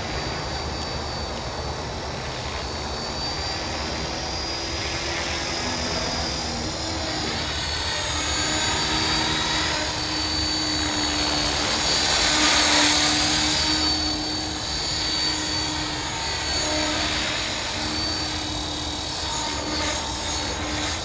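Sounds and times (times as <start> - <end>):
rc helicopter motor whine: 0.0 - 21.0
rotor blades rushing: 0.0 - 21.0.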